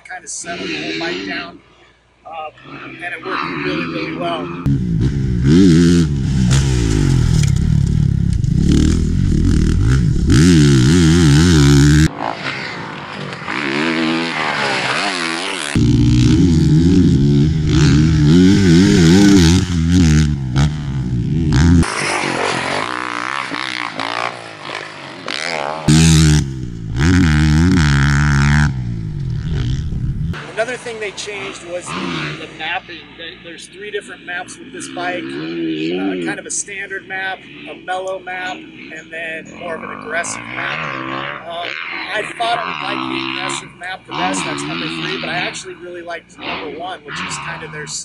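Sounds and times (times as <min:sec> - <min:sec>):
motorcycle engine revving: 0:02.6 - 0:33.2, 0:33.9 - 0:48.0.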